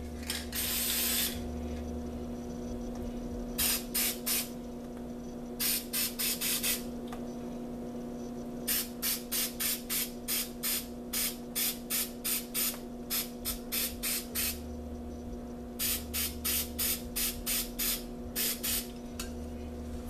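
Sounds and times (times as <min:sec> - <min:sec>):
steady background hum: 0:00.0 - 0:20.0
spray paint can bursts: 0:00.5 - 0:01.4, 0:08.7 - 0:14.6, 0:15.8 - 0:18.9.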